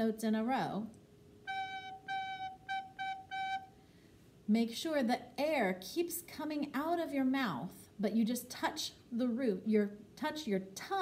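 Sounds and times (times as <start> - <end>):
soprano recorder notes: 1.4 - 3.8.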